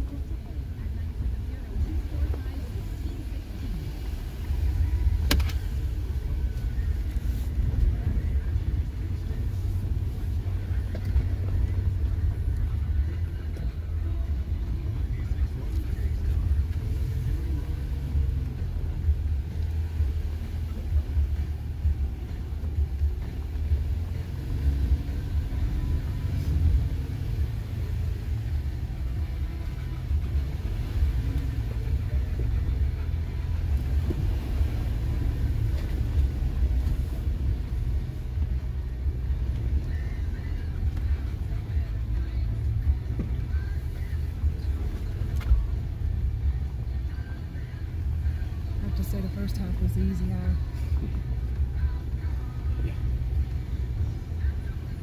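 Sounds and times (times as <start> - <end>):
low engine and drivetrain rumble: 0.0 - 55.0.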